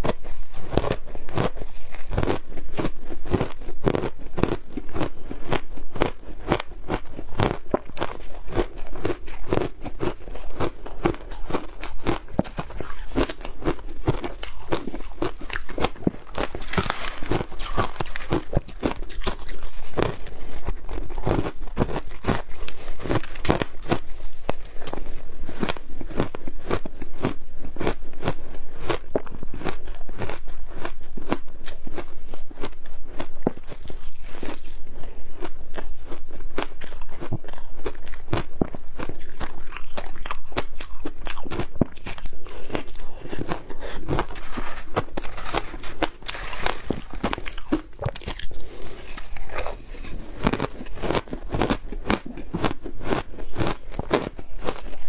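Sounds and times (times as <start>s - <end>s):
ice crunching while chewed: 0.0s - 55.0s.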